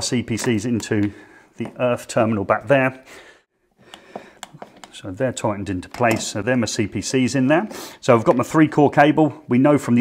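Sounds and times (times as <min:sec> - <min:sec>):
screwdriver clicking and scraping: 0:03.9 - 0:05.0.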